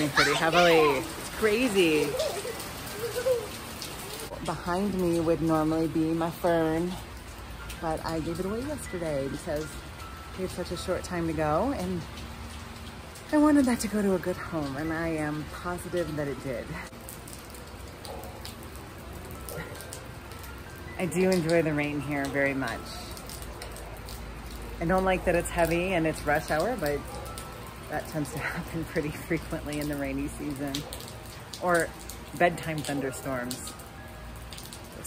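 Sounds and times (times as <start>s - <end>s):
heavy rain on pavement: 0.0s - 35.0s.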